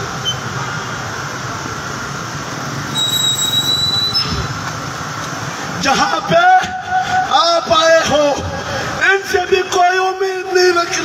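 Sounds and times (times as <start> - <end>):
city street traffic: 0.0 - 11.0
thin high-pitched squeal: 2.9 - 4.5.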